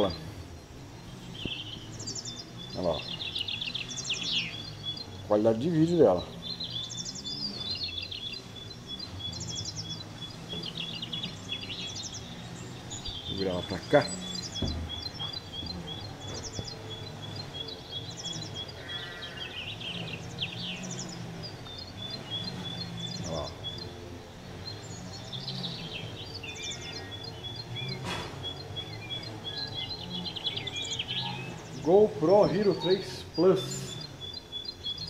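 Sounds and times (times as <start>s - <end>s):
birds chirping: 0.0s - 35.0s
high bird trill: 0.0s - 35.0s.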